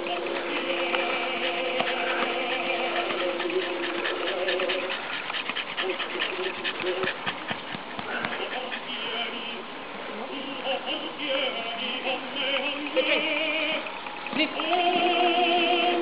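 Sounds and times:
dog howling: 0.0 - 7.2
dog breathing rapidly: 0.0 - 9.5.

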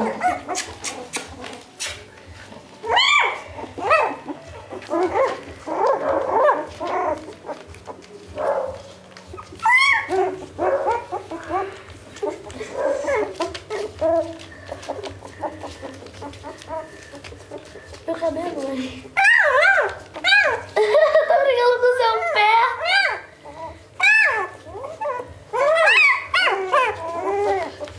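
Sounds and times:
puppies crying: 0.0 - 27.9.

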